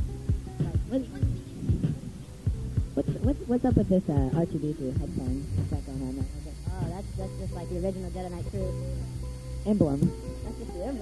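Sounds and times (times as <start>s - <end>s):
deep kick drums dropping in pitch: 0.0s - 10.2s.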